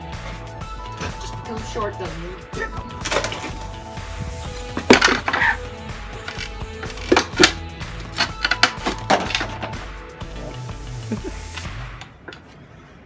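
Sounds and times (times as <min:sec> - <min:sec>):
background music: 0:00.0 - 0:12.2.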